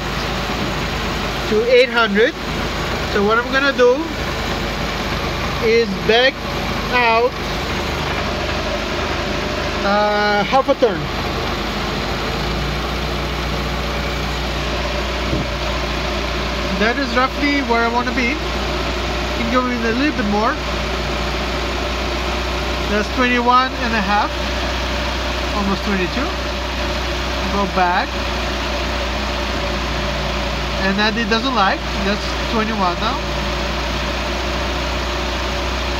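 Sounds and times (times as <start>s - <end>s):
engine idling: 0.0s - 35.9s.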